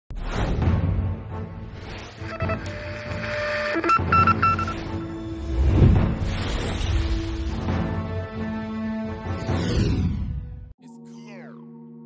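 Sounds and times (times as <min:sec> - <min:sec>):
short electronic beeps: 0:02.2 - 0:04.9
steady electronic tone: 0:02.2 - 0:05.1.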